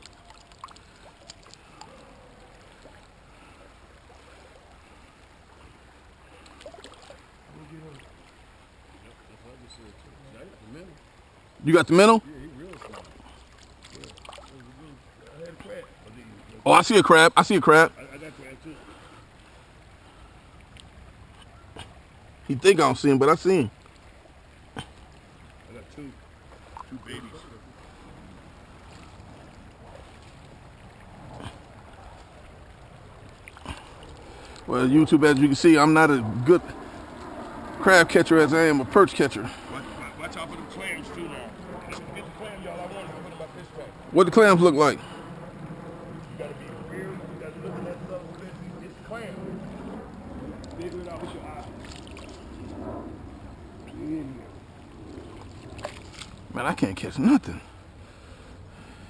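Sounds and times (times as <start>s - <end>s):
creek water splashing: 0.0s - 59.0s
wind buffeting microphone: 26.7s - 56.6s
sharp splash or knock: 55.4s - 56.4s.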